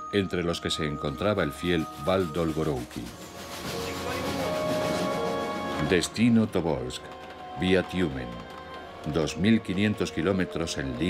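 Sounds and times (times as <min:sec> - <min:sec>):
train rushing past: 0:03.2 - 0:06.2.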